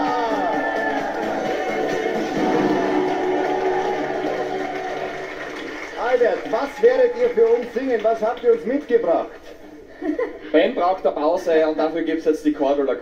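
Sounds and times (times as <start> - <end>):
audience clapping and cheering: 0.0 - 9.4
game show music sting: 0.1 - 6.0.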